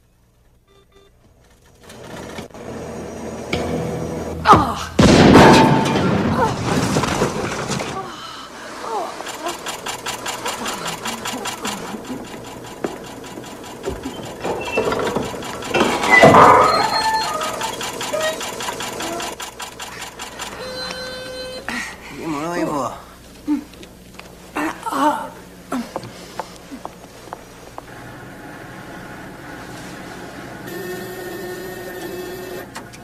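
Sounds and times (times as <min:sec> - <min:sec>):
loud sparking burst: 0:08.7 - 0:20.9
fast mechanical rattle: 0:09.2 - 0:21.6.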